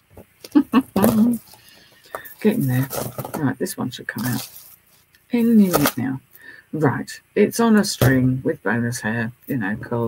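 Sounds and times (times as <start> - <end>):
woman laughing: 0.4 - 1.4.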